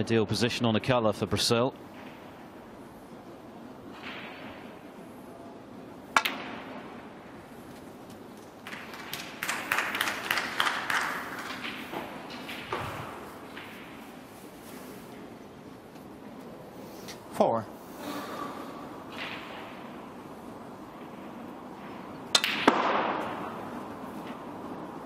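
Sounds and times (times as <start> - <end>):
snooker balls clicking and knocking: 6.1 - 14.3, 18.9 - 25.0.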